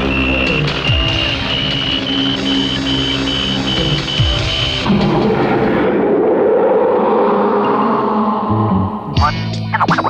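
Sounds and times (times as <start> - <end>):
electronic detector beeping: 0.0 - 4.8
low droning synth score: 0.0 - 9.6
low falling sweep: 4.9 - 9.1.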